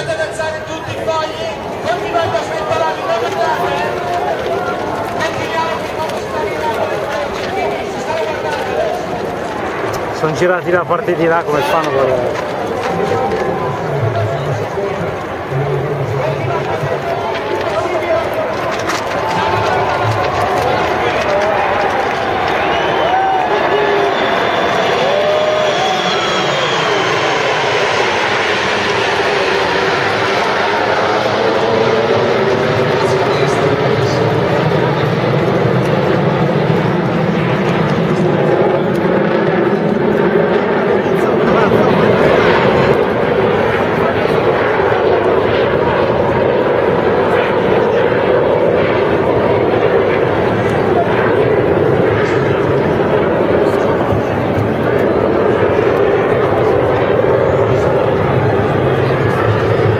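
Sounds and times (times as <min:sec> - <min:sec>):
jets flying over: 0:00.0 - 0:59.9.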